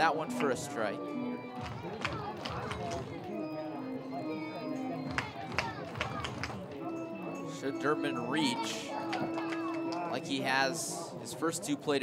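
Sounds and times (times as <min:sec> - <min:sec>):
crowd chatter: 0:00.0 - 0:12.0
music over loudspeakers: 0:00.0 - 0:12.0.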